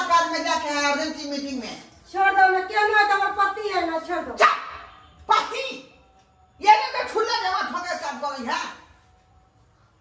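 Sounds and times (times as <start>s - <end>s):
dog-like barks: 4.4s - 4.9s.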